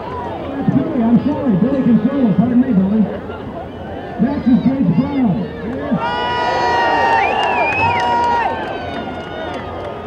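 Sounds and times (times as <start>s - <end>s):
crowd murmuring: 0.0s - 6.2s
man speaking over loudspeaker: 0.5s - 3.2s, 4.2s - 6.0s.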